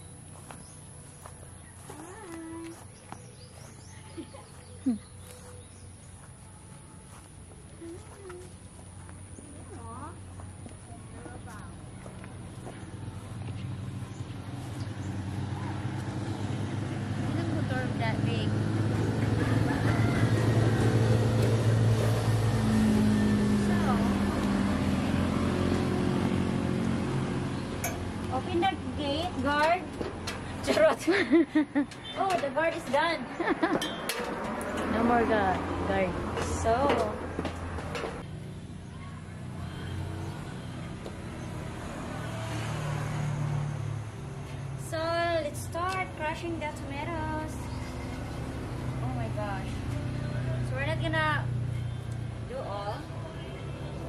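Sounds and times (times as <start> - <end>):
vehicle engine passing: 7.0 - 54.0.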